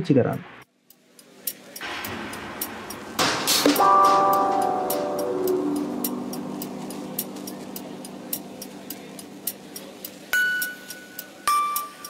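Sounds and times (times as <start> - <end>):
light regular ticking: 0.8 - 3.2, 4.9 - 12.0
whooshing swell: 1.8 - 10.9
held music chord: 1.8 - 11.4.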